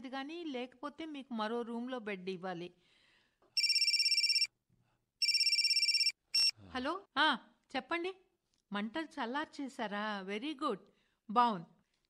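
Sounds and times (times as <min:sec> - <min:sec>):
telephone ringing: 0:03.6 - 0:04.5, 0:05.2 - 0:06.5.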